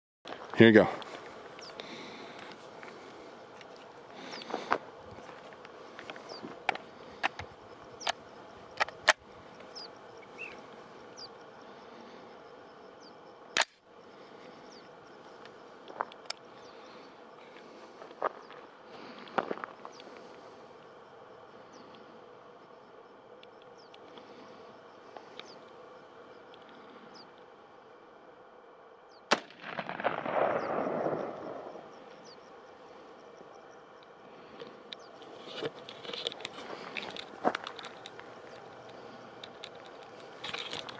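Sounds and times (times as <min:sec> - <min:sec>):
rifle shot: 0:29.3 - 0:31.8.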